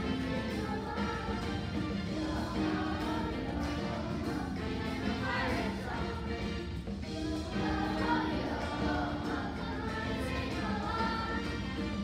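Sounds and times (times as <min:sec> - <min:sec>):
children's chorus singing: 0:00.0 - 0:12.0
musical accompaniment: 0:00.0 - 0:12.0.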